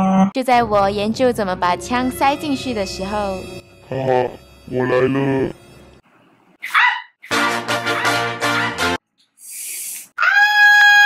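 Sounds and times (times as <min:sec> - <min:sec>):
short high yelp: 0:06.6 - 0:08.8.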